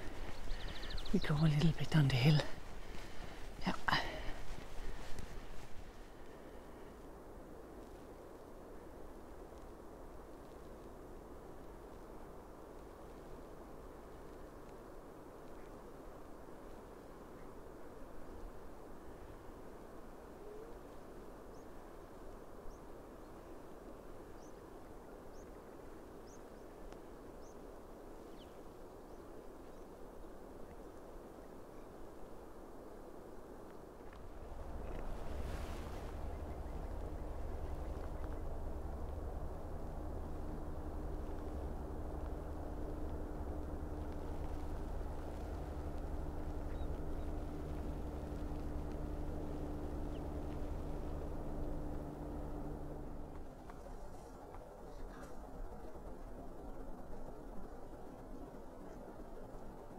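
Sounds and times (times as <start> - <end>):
faint bird chirps: 0.0 - 5.6, 46.3 - 48.0
low mechanical hum with held tones: 0.0 - 59.9.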